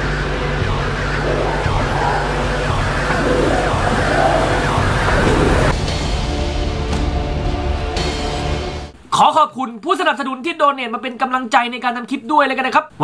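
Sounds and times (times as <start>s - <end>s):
low drone: 0.0s - 6.4s
wailing tones: 0.6s - 5.7s.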